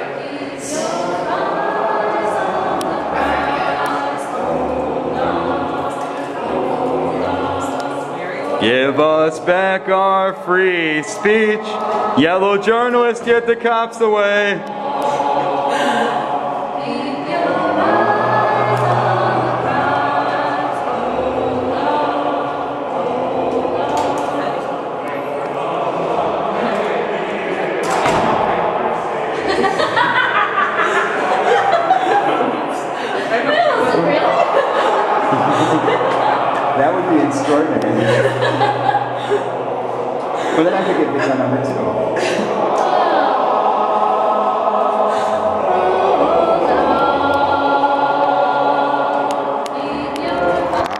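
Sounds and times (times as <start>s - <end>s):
person chanting: 0.0s - 27.8s, 31.0s - 50.9s
group singing in chorus: 0.0s - 50.9s
voices: 0.0s - 50.9s
sudden thump: 27.8s - 28.6s.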